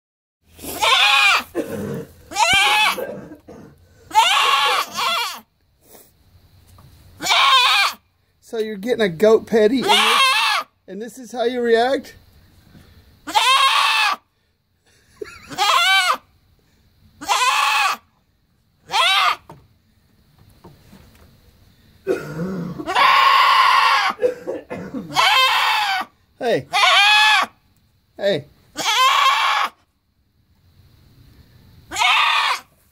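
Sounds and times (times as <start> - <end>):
goat bleating loudly: 0.7 - 3.2, 4.1 - 5.4, 7.2 - 8.0, 9.7 - 10.7, 13.2 - 14.2, 15.3 - 16.2, 17.2 - 18.0, 18.9 - 19.5, 22.8 - 24.2, 25.0 - 27.6, 28.7 - 29.8, 31.9 - 32.7.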